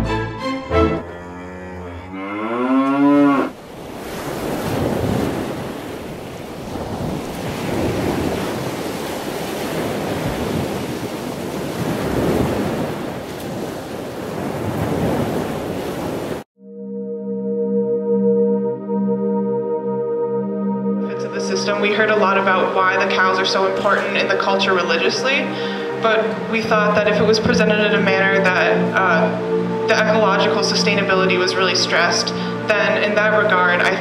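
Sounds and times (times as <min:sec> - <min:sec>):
cow mooing: 0:01.0 - 0:03.6.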